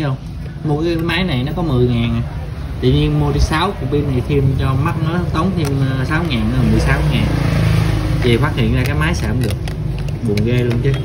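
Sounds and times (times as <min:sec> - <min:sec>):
man speaking: 0:00.0 - 0:07.6, 0:10.2 - 0:11.0.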